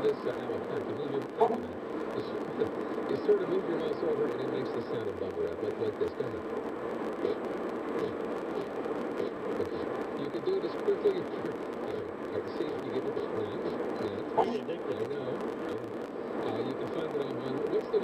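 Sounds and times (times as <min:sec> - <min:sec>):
steady road hum: 0:00.0 - 0:18.0.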